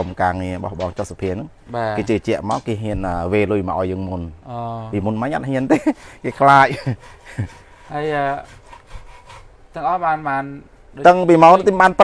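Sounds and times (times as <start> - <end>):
man speaking: 0.0 - 6.9, 9.8 - 12.0
bamboo scraping and rubbing: 5.6 - 9.7.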